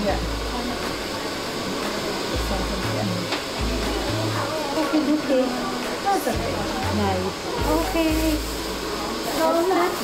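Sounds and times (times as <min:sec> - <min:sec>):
hair dryer running: 0:00.0 - 0:10.0
background music with deep bass: 0:01.8 - 0:04.6.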